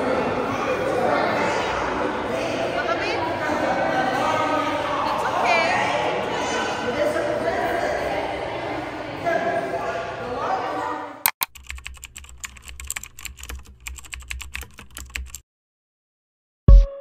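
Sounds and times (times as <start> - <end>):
children's voices: 0.0 - 7.0
keyboard typing clicks: 11.3 - 15.4.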